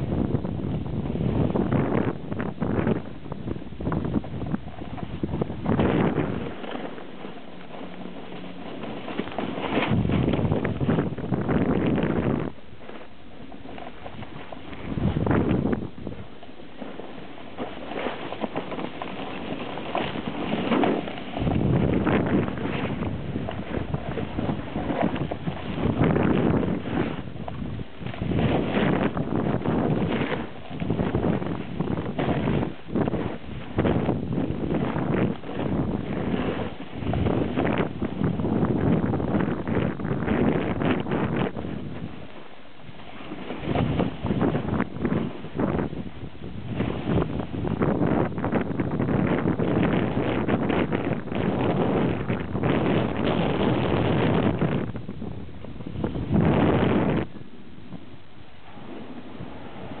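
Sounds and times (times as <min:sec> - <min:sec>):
wind buffeting microphone: 0:00.0 - 1:00.0.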